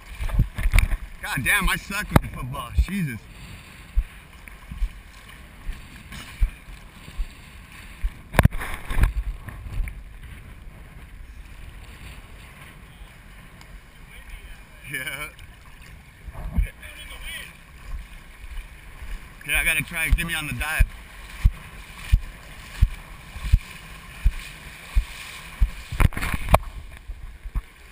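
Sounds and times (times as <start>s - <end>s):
sea water sloshing and lapping: 0.0s - 27.9s.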